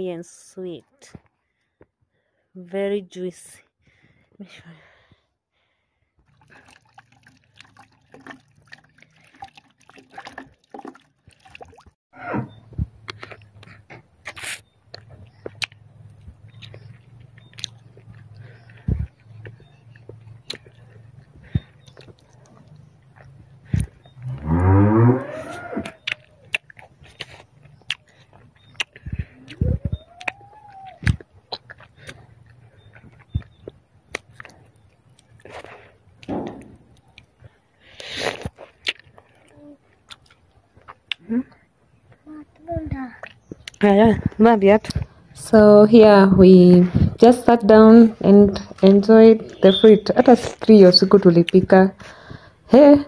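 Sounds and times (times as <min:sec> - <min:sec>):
chewing and wet mouth clicks: 0:13.0 - 0:24.2, 0:25.8 - 0:36.3, 0:36.9 - 0:42.2, 0:43.2 - 0:45.1
long rising call: 0:24.2 - 0:26.1.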